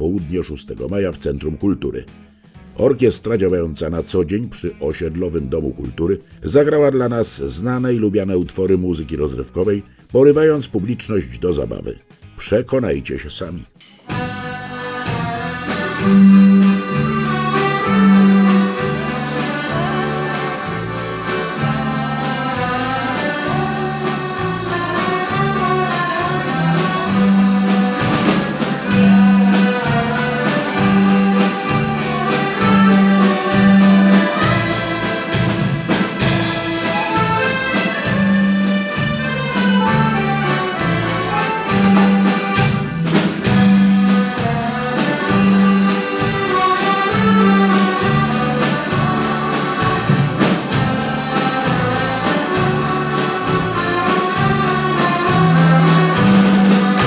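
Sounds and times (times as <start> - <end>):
drum kit beat: 13.8 - 57.0
accordion orchestra playing: 14.1 - 57.0
bouncing bass line: 16.0 - 46.5.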